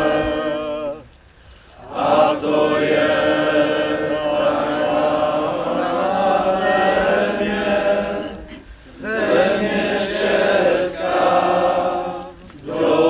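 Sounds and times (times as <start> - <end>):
crowd singing in unison: 0.0 - 13.0.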